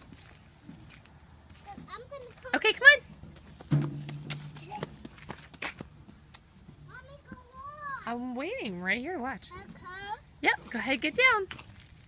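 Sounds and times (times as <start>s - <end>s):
toddler running footsteps: 0.0s - 8.2s.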